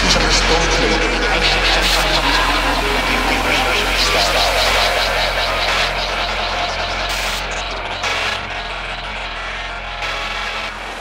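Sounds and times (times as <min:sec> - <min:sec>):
electronic beat: 0:00.0 - 0:11.0
low bass drone: 0:00.0 - 0:11.0
synthesized noise sweeps: 0:00.0 - 0:11.0.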